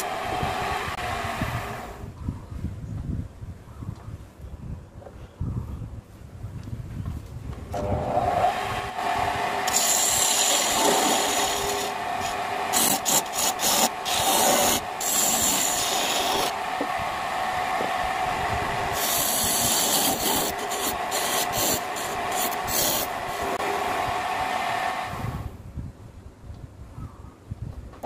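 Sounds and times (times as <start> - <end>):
wood lathe motor humming: 0.0 - 2.0, 7.8 - 25.4
chisel scraping spinning wood: 7.8 - 24.0.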